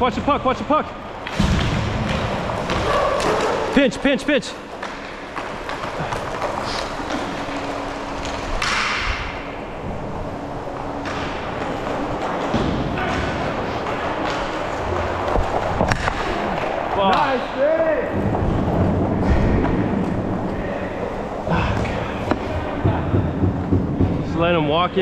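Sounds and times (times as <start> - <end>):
skate wheels rolling on floor: 1.0 - 25.0
stick and puck knocks: 10.9 - 17.3.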